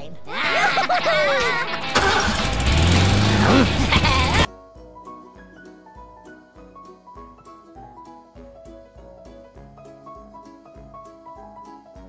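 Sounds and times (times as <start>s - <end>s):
music: 0.0s - 12.0s
cartoon mower engine hum: 0.8s - 4.5s.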